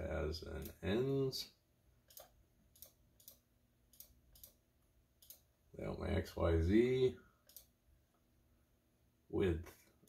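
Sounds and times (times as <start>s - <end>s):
computer mouse clicking: 2.1s - 4.6s, 5.2s - 5.5s, 7.4s - 7.7s.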